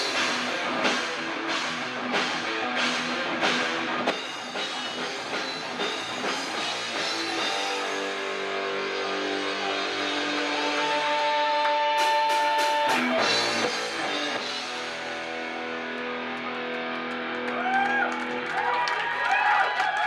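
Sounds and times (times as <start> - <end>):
bass guitar: 0.0 - 18.8
electric guitars: 0.0 - 20.0.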